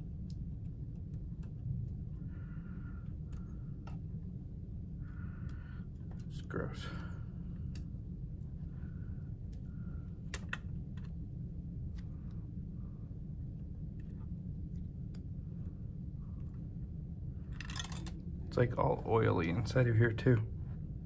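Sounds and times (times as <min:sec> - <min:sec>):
low hum: 0:00.0 - 0:21.0
plastic tool clicking on connectors: 0:09.5 - 0:11.2.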